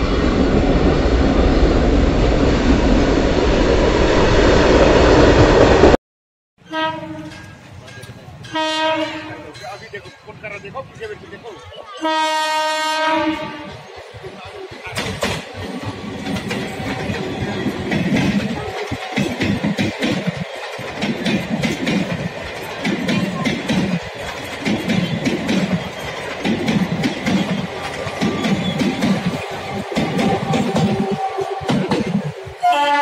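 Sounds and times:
train rumble: 0.0 - 6.0, 6.6 - 33.0
train horn: 6.6 - 7.5, 8.5 - 9.6, 12.0 - 13.8, 29.7 - 32.0, 32.6 - 33.0
train wheels clattering over rail joints: 7.2 - 11.4, 13.8 - 32.6.

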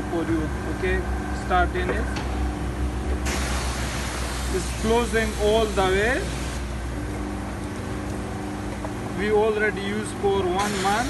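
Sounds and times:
hydraulic pump hum: 0.0 - 11.0
hydraulic hiss: 3.2 - 6.8, 10.6 - 11.0.

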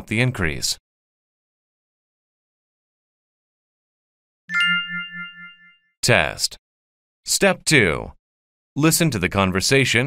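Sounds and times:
ringing chime: 4.5 - 5.9.

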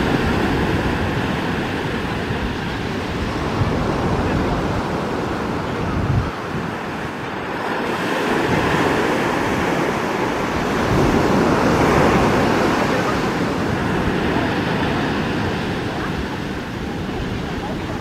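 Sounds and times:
surf breaking on shore: 0.0 - 18.0
wind buffeting microphone: 0.0 - 18.0.

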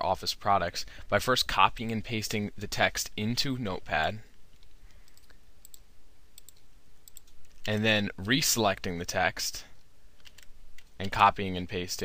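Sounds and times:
keyboard and mouse clicks: 4.5 - 5.8, 6.4 - 7.8, 10.2 - 11.2.

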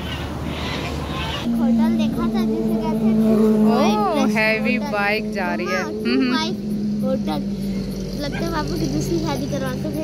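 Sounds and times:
low engine hum: 0.2 - 10.0
high-pitched voices: 1.4 - 10.0.

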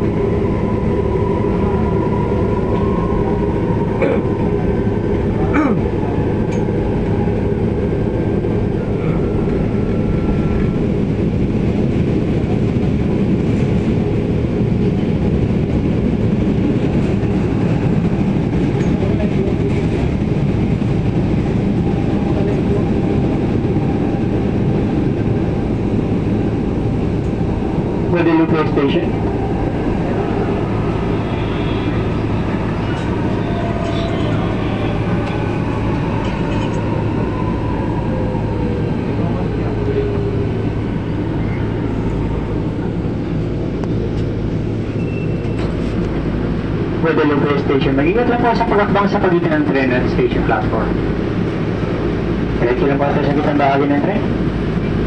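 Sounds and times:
passing train rush: 0.0 - 55.0
train rolling rumble: 0.0 - 55.0
train braking whine: 44.9 - 46.0.

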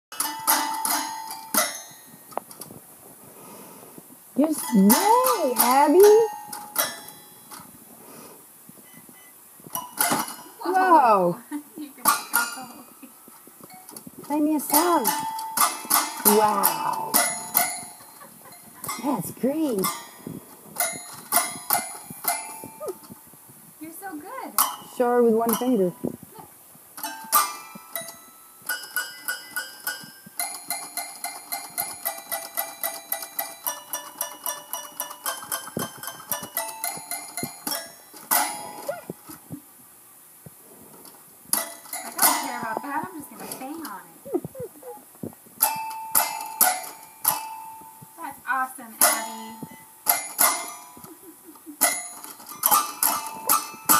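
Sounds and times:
toy piano notes: 0.2 - 2.1, 14.6 - 20.2, 27.0 - 39.0, 41.6 - 43.6, 49.0 - 51.1.

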